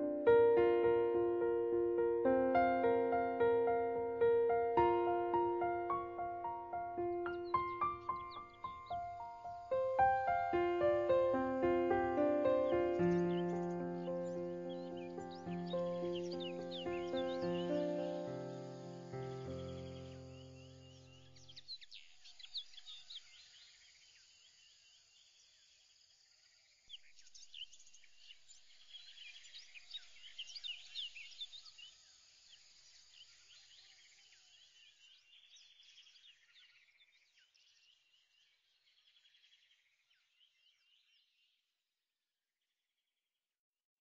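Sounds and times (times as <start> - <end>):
background music: 0.0 - 20.4
bird-like chirping: 1.6 - 23.6.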